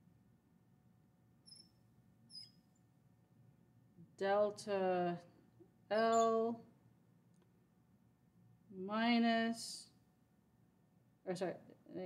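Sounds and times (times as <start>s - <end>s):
marker squeaking on glass board: 1.5s - 2.6s, 5.9s - 6.3s.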